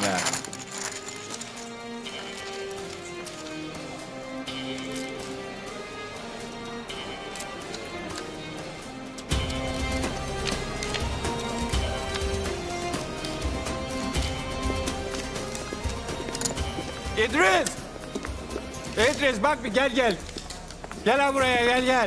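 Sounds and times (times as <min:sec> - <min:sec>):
held notes of drama score: 0:00.0 - 0:22.0
light ticking rhythm: 0:01.4 - 0:22.0.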